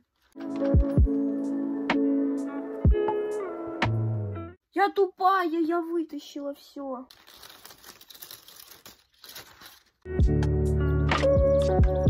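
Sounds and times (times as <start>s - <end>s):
background music with beat: 0.4s - 4.4s, 10.1s - 12.0s
cellophane crinkling: 7.0s - 10.1s.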